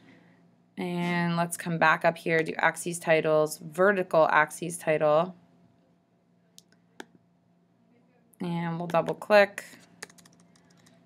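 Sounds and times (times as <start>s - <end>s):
computer mouse clicks: 10.0s - 11.0s.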